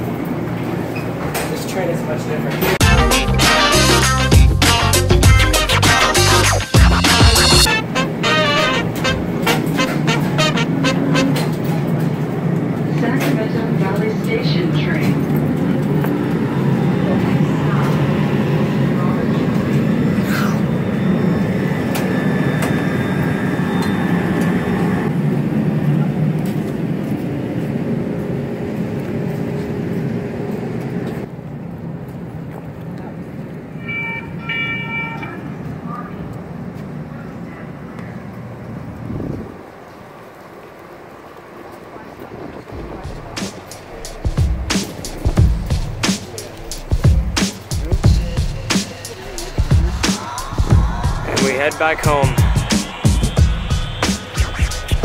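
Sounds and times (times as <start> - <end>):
light-rail train rumbling: 0.0 - 55.0
short train horn toots: 2.8 - 4.9, 7.5 - 11.8.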